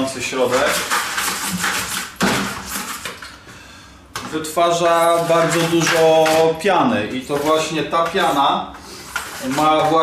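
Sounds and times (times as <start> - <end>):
brush scrubbing plastic bucket: 0.0 - 3.2, 4.6 - 10.0.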